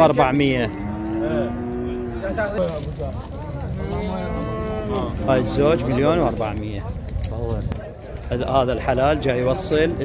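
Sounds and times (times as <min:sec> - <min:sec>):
calves mooing: 0:00.4 - 0:02.4.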